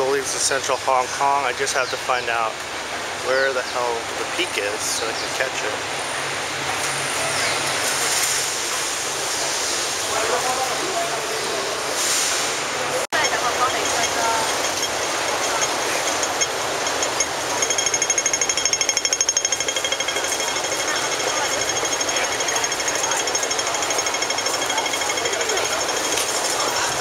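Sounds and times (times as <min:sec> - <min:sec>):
crowd chattering: 0:10.0 - 0:12.0, 0:12.7 - 0:17.7, 0:19.4 - 0:27.0
crossing signal rapid ticking: 0:13.1 - 0:27.0.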